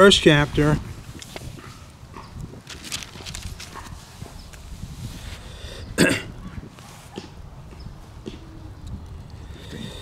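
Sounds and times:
wind rumble on microphone: 0.0s - 10.0s
handling rustle: 1.0s - 5.4s.

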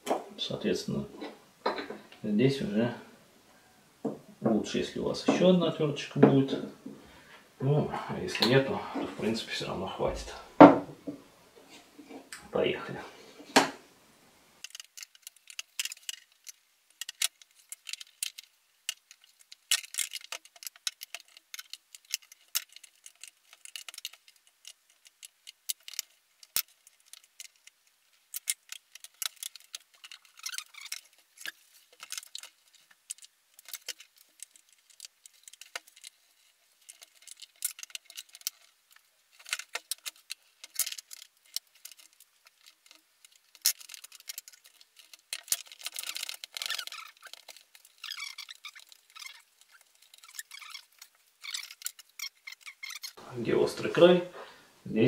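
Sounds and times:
plastic clicks creaks and crackles: 14.6s - 53.2s.

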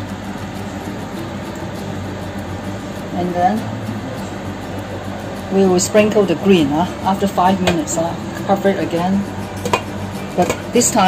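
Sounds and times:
fan humming: 0.0s - 11.0s.

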